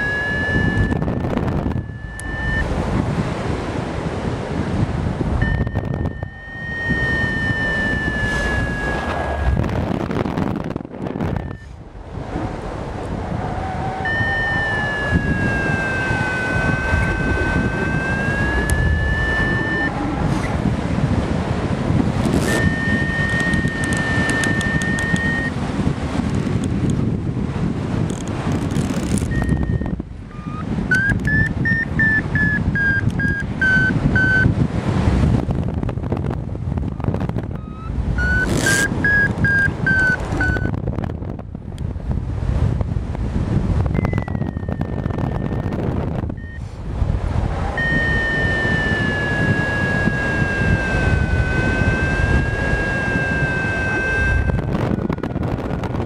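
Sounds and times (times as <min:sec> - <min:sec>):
quick electronic beeps: 0:00.0 - 0:02.7, 0:05.4 - 0:09.6, 0:11.2 - 0:11.7, 0:14.0 - 0:20.0, 0:22.3 - 0:25.5, 0:29.2 - 0:34.5, 0:37.6 - 0:40.7, 0:43.9 - 0:46.6, 0:47.8 - 0:55.4
variometer electronic tone: 0:00.0 - 0:03.2, 0:05.1 - 0:11.9, 0:13.3 - 0:25.6, 0:28.0 - 0:34.6, 0:35.4 - 0:41.2, 0:43.8 - 0:46.8, 0:47.4 - 0:56.0.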